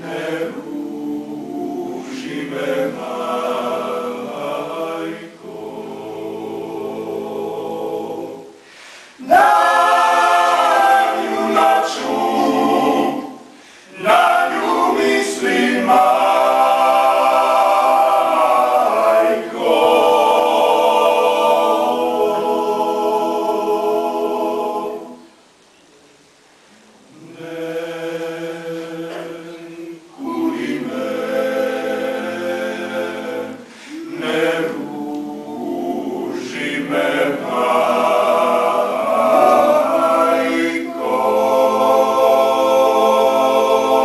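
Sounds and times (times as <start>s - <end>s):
men singing a cappella harmony: 0.0s - 8.5s, 9.2s - 25.2s, 27.2s - 44.0s
breath: 8.6s - 9.2s, 13.5s - 13.9s, 33.6s - 34.0s.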